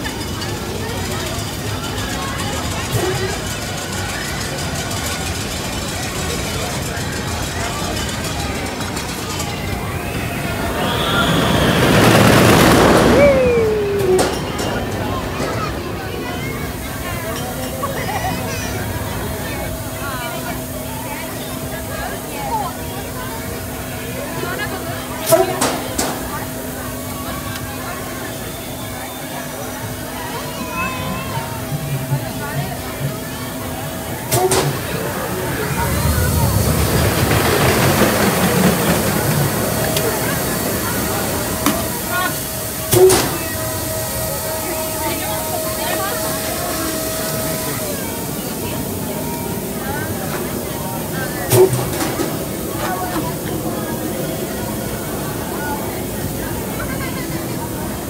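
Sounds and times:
broad rushing noise: 0.0 - 58.0.

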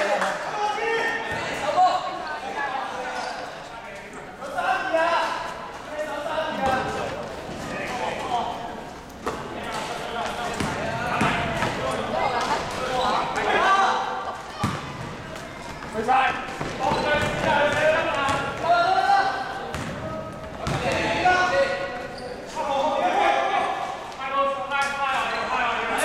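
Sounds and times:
basketball bouncing on court: 10.4 - 11.9, 14.6 - 18.7, 19.6 - 21.2.

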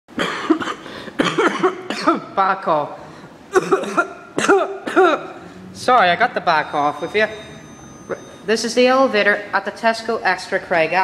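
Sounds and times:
person coughing: 0.2 - 2.3, 3.5 - 5.5.

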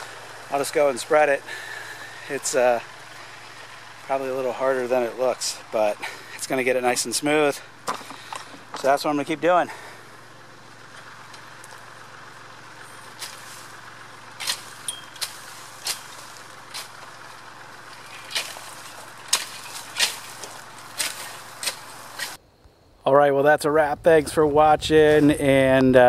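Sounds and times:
engine drone: 0.0 - 22.4.

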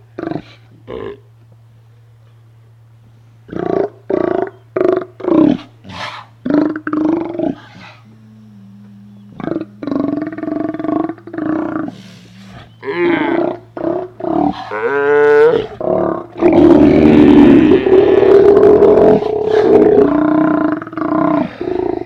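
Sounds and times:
sea lions roaring: 3.5 - 22.0.

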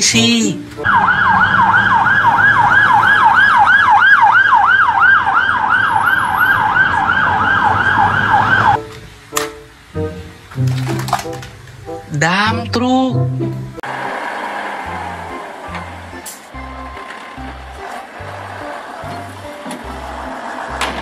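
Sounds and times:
low traffic rumble: 0.0 - 12.2, 13.2 - 21.0
police siren yelping: 0.8 - 8.8, 13.8 - 21.0.

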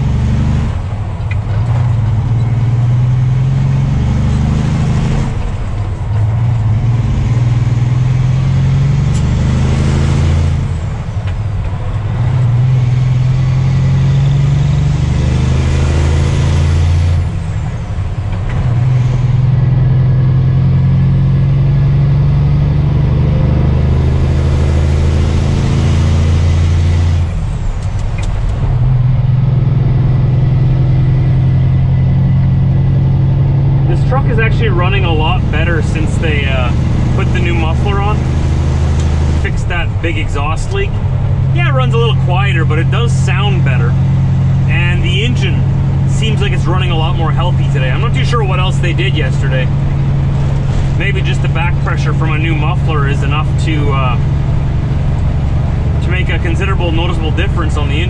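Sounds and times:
truck diesel engine shifting gears: 0.0 - 58.0.

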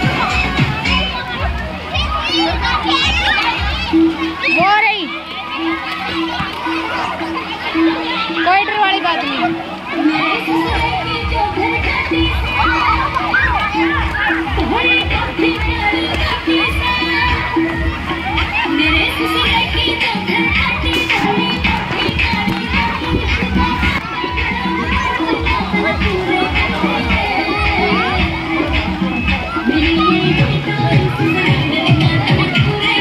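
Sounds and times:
background music with beat: 0.0 - 33.0
children shouting and squealing: 0.0 - 33.0
pool water splashing: 0.0 - 33.0.

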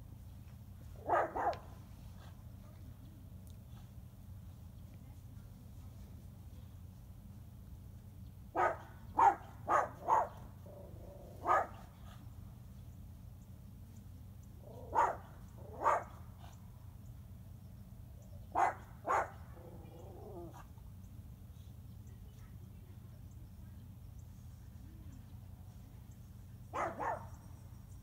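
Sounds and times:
steady low hum: 0.0 - 28.0
dog barking: 1.0 - 1.7, 8.5 - 10.5, 11.3 - 12.2, 14.7 - 16.2, 18.5 - 19.5, 26.7 - 27.4.

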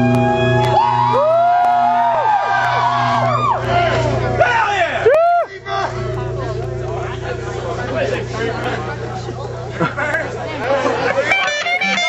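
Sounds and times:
crowd chatter: 0.0 - 12.0
steady low hum: 0.0 - 12.0.

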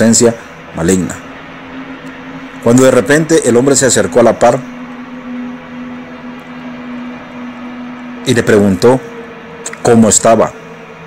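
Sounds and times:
steady low drone: 0.0 - 11.0.

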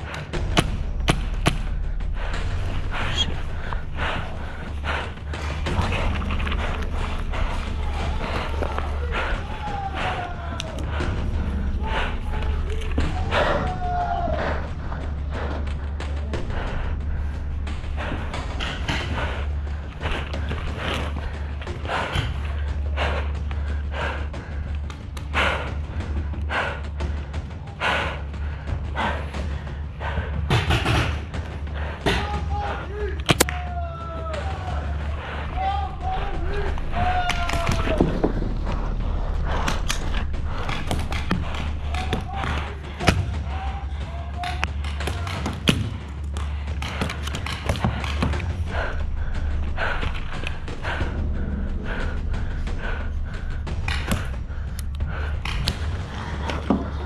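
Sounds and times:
steady low rumble: 0.0 - 30.5, 34.7 - 45.0, 45.8 - 57.0
distant shouting voices: 2.9 - 16.9, 31.8 - 39.4, 40.4 - 46.0.

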